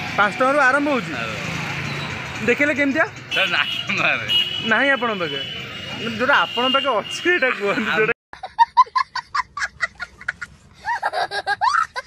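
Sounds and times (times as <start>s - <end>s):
young child laughing: 8.4s - 12.0s.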